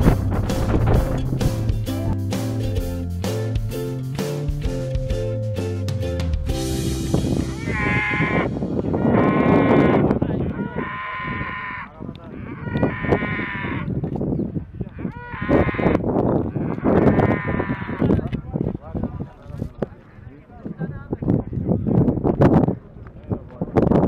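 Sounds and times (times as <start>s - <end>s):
rough low noise: 0.0s - 10.5s
livestock bleating: 7.6s - 13.9s, 15.0s - 18.1s.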